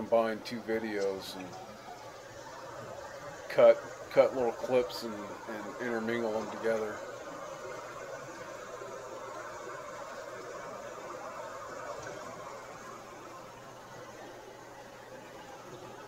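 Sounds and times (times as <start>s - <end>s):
creek water running over rocks: 0.0s - 16.0s.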